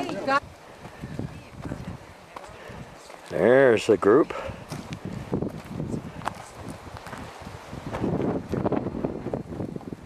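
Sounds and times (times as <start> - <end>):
wind on microphone: 0.0 - 3.0, 4.3 - 10.0
footsteps crunching on rocky trail: 0.0 - 10.0.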